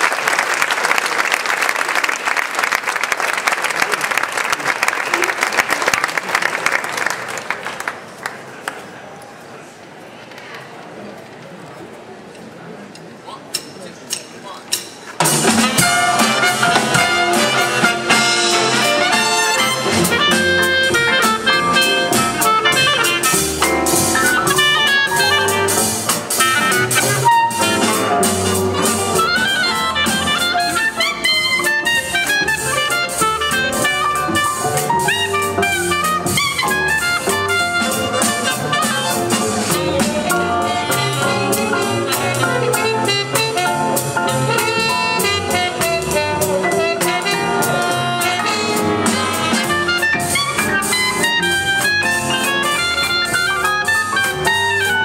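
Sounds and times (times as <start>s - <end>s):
jazz big band playing: 13.5s - 55.0s.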